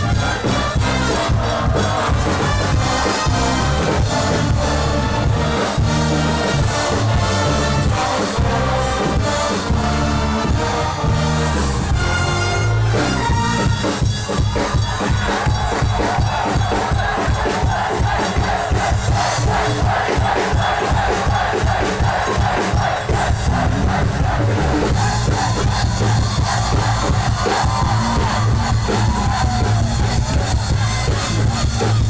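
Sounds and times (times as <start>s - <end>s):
brass band playing: 0.0s - 32.0s
crowd shouting and cheering: 0.0s - 32.0s.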